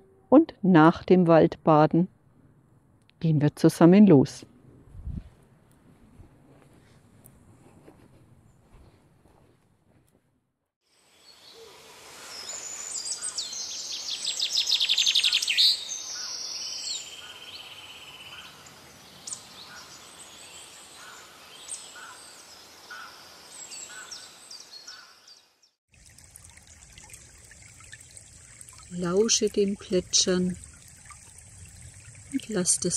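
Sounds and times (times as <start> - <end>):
trickling stream: 10.8 - 24.8, 25.9 - 32.9
songbirds singing: 11.3 - 25.7.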